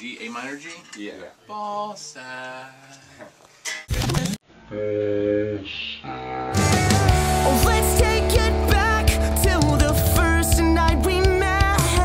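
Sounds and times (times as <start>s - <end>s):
guitar chord ringing: 6.6s - 11.6s.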